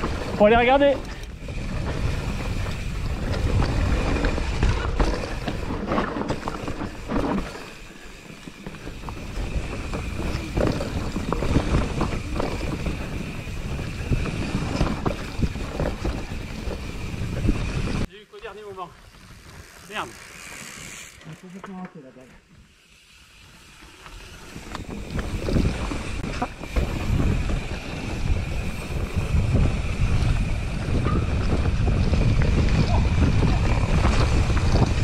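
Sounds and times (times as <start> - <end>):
wind buffeting microphone: 0.0 - 7.4, 8.2 - 18.1, 24.6 - 35.0
bike rattling and knocking: 0.0 - 18.1, 23.9 - 35.0
tyres rolling over dirt: 0.0 - 18.1, 23.6 - 35.0.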